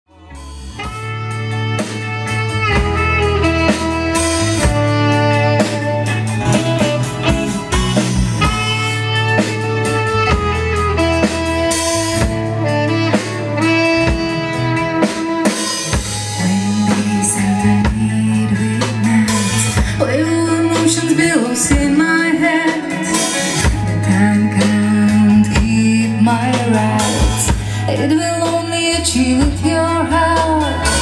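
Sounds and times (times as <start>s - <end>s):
live rock band playing: 0.1s - 31.0s
saxophone melody: 0.1s - 31.0s.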